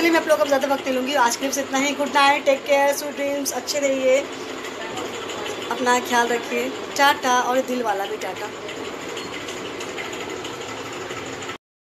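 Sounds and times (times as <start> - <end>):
mechanical hum: 0.0 - 11.6.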